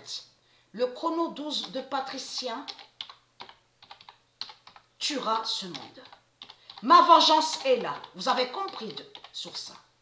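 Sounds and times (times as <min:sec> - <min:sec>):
computer keyboard key clicks: 0:02.7 - 0:04.8, 0:05.7 - 0:06.8, 0:07.5 - 0:09.8.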